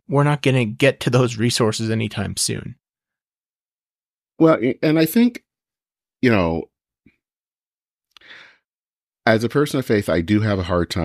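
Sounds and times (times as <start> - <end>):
man speaking: 0.0 - 2.8, 4.4 - 5.5, 6.2 - 6.7, 9.3 - 11.0
man's soft in-breath: 8.2 - 8.7.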